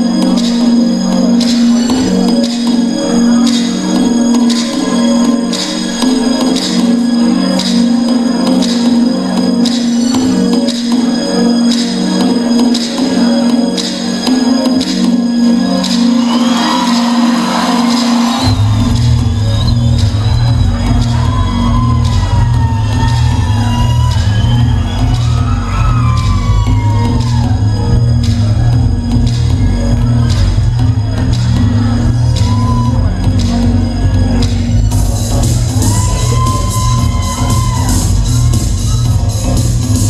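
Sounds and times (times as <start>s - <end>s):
dance music with heavy bass: 0.0s - 40.0s.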